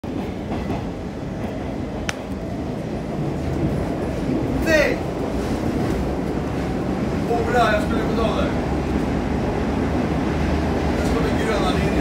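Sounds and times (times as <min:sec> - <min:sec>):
metro car rumbling: 0:00.0 - 0:12.0.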